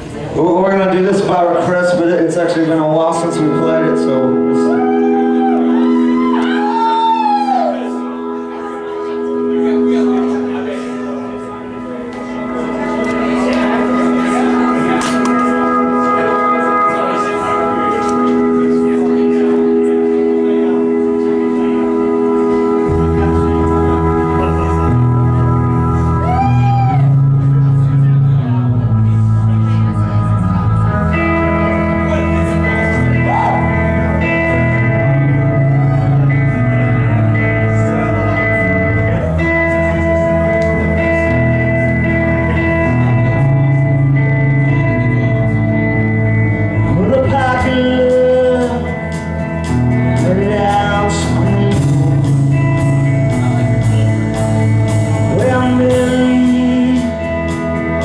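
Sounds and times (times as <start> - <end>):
bass guitar: 0.0 - 58.0
rock band sustained chords: 0.0 - 58.0
voices murmuring: 7.9 - 46.6
drums: 11.8 - 16.9, 17.5 - 44.9, 45.5 - 58.0.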